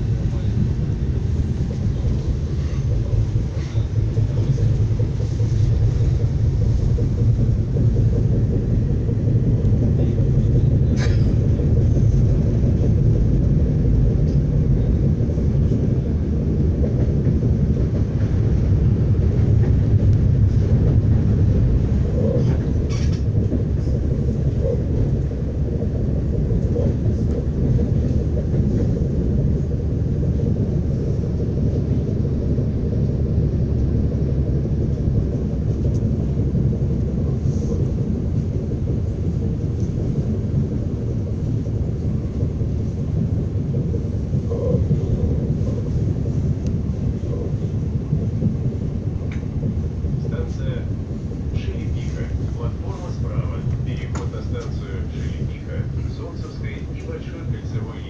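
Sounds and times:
train interior rumble: 0:00.0 - 0:58.0.

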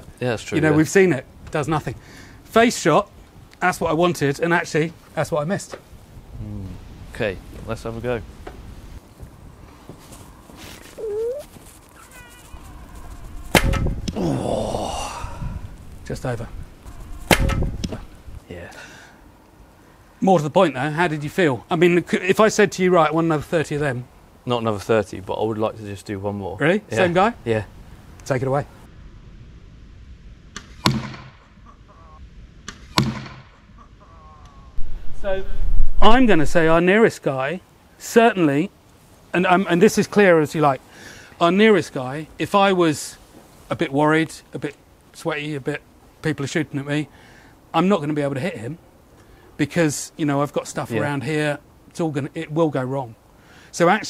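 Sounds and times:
longbow crack: 0:12.6 - 0:14.4, 0:15.0 - 0:18.4
arrow whooshing in flight: 0:12.8 - 0:14.2, 0:15.4 - 0:18.4
arrow striking wooden target: 0:13.4 - 0:14.2, 0:17.2 - 0:18.1, 0:30.6 - 0:31.4, 0:32.7 - 0:33.5.

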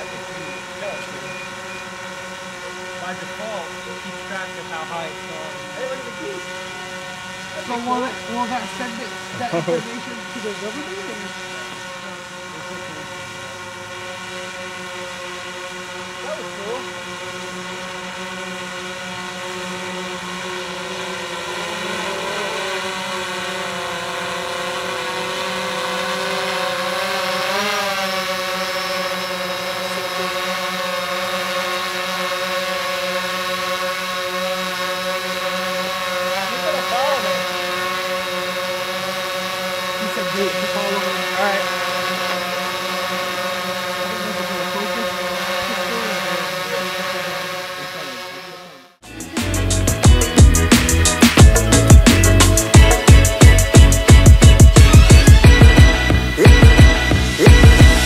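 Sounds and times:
drone propellers humming: 0:00.0 - 0:58.0.

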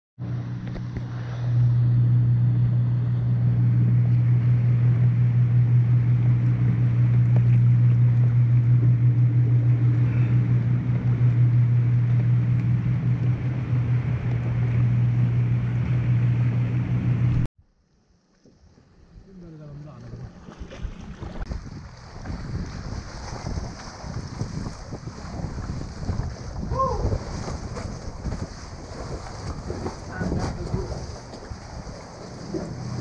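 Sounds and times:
low motor hum: 0:00.2 - 0:33.0.

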